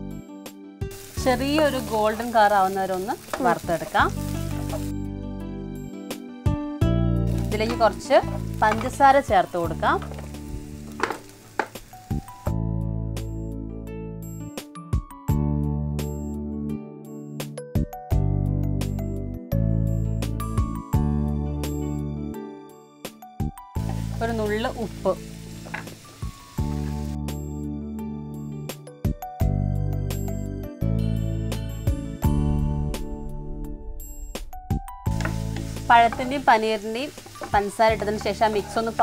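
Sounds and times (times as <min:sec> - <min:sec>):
background music: 0:00.0 - 0:39.0
food sizzling in a pan: 0:00.8 - 0:05.1, 0:07.2 - 0:12.6, 0:23.8 - 0:27.6, 0:35.0 - 0:39.0
wooden spatula clicking on pan: 0:08.6 - 0:09.0.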